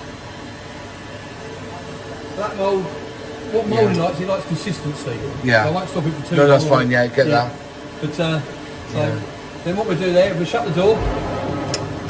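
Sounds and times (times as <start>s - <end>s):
factory machinery humming: 0.0s - 12.0s.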